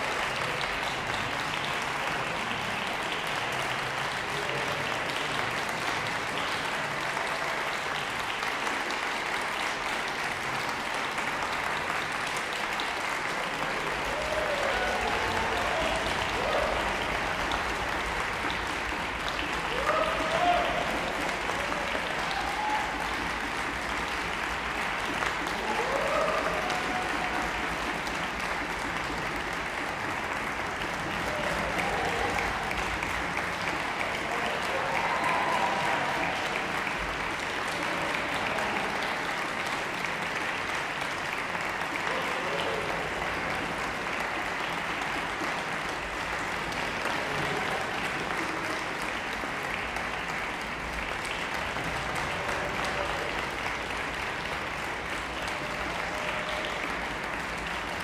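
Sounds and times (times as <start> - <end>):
audience applauding: 0.0 - 58.0.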